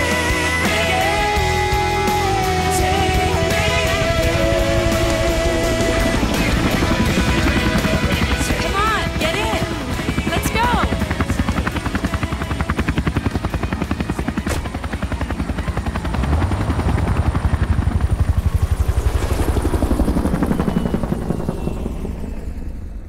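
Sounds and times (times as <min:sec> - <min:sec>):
helicopter rotor chopping: 0:00.0 - 0:23.0.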